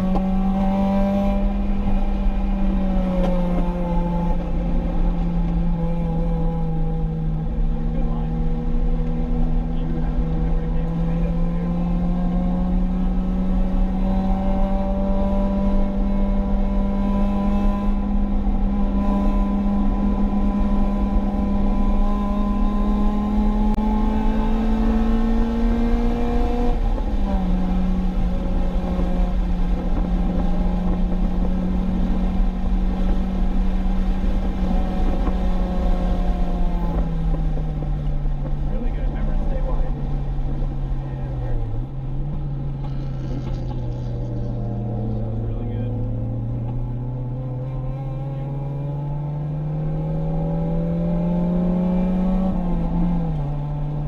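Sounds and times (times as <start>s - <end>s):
car engine revving in cabin: 0.0s - 54.0s
road and tyre rumble: 0.0s - 54.0s.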